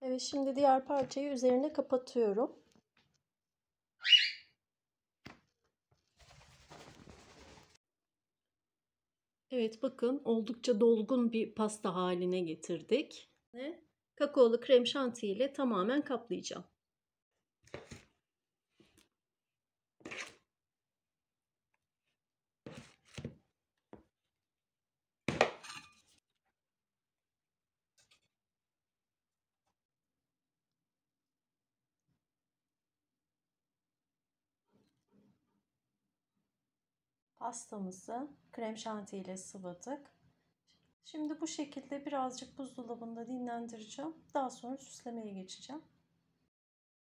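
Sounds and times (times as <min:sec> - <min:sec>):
high-pitched bird chirp: 0:04.0 - 0:04.6
kitchen utensil scraping and knocking: 0:25.3 - 0:26.2.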